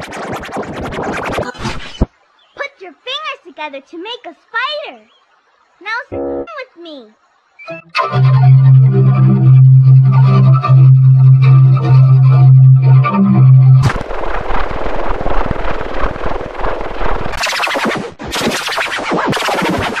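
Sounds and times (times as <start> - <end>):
low buzzing tone: 8.3 - 17.4
dense crackling noise: 12.5 - 20.0.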